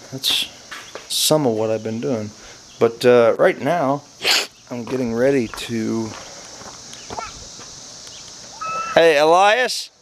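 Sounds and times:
insects chirring: 0.0 - 10.0
short high call: 8.5 - 9.1.

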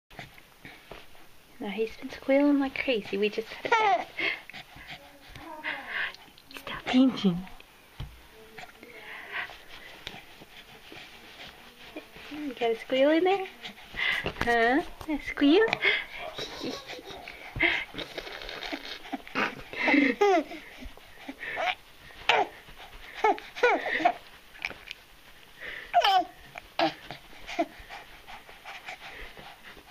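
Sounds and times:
baby making breathy sounds: 25.9 - 27.7
baby cooing: 26.0 - 27.0.

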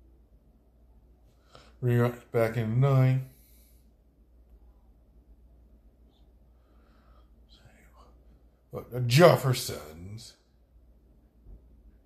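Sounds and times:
low hum: 0.0 - 9.1
man whispering: 7.4 - 9.3.

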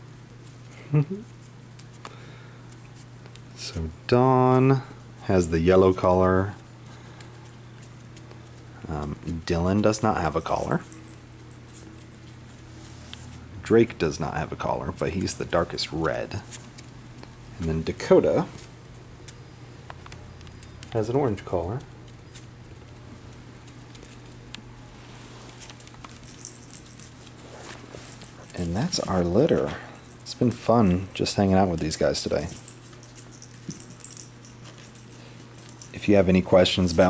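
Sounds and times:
steady low hum: 0.0 - 37.0
puppy claws pattering on tile: 6.8 - 8.8, 10.4 - 13.3, 18.5 - 24.7, 25.3 - 29.4
claws ticking on tile floor: 18.6 - 24.6.

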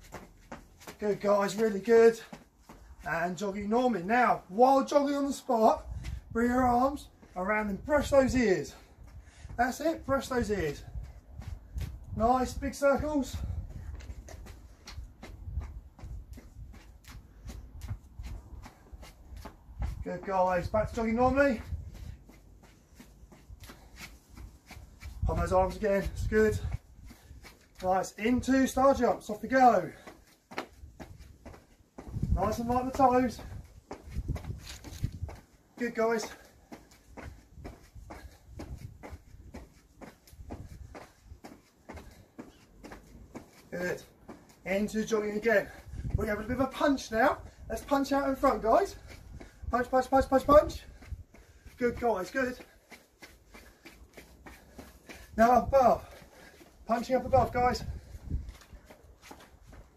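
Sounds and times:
footsteps on stone paving: 0.0 - 59.9
trainers landing on stone paving: 27.7 - 47.5.

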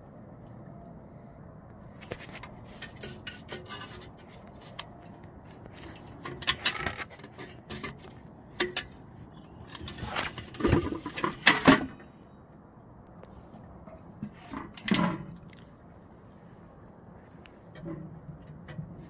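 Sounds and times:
metal clicks knocks and scrapes: 2.0 - 12.0, 13.9 - 15.6.

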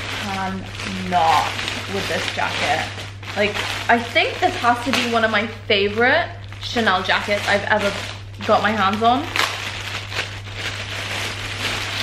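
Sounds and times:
low steady hum: 0.0 - 12.0
plastic wrapping crinkling: 0.0 - 12.0.

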